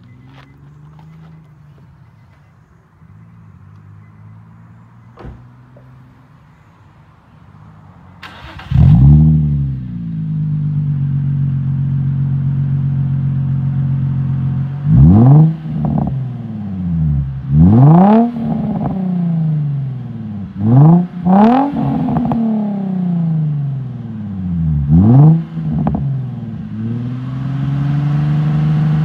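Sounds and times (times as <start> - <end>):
car engine starting and revving: 8.2 - 29.0.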